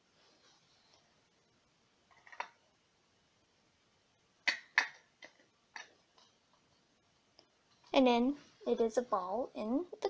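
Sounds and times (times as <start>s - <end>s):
plastic cup clicks and knocks: 4.5s - 5.9s.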